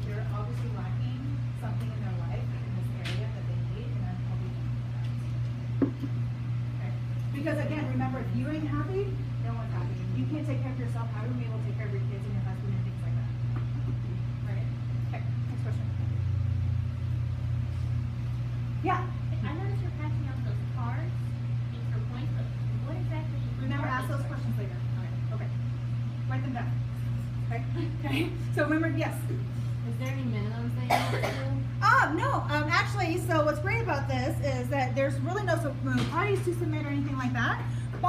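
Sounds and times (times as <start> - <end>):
woman talking: 0.0 - 5.5, 6.6 - 13.6, 14.3 - 16.4, 18.8 - 38.0
steady low hum: 0.0 - 38.0
cough: 30.9 - 31.6.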